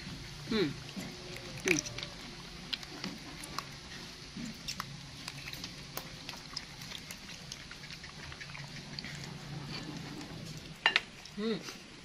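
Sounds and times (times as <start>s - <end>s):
monkey chewing and lip-smacking: 0.0s - 11.4s.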